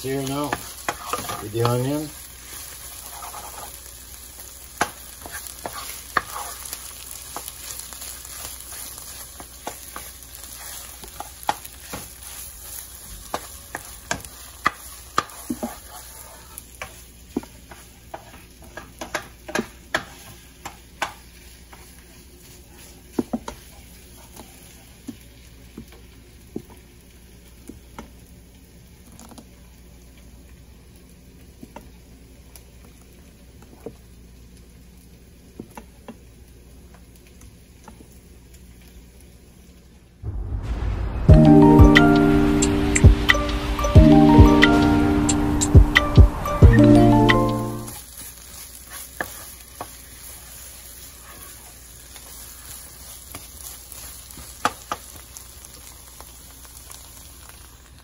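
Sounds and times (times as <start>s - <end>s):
onions frying in oil: 0.0s - 40.6s, 41.2s - 58.0s
wooden spoon knocking on pan: 16.8s - 21.2s, 23.1s - 23.6s.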